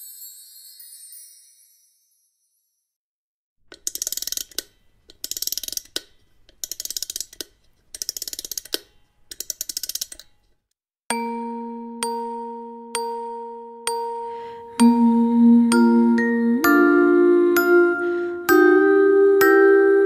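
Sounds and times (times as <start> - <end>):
music box chime notes: 0.0 - 2.8, 11.1 - 20.0
music box ratchet clicking: 3.7 - 10.4.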